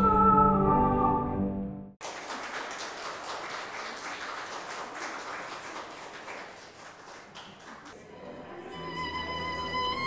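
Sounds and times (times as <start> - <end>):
audience applauding: 2.0 - 8.0.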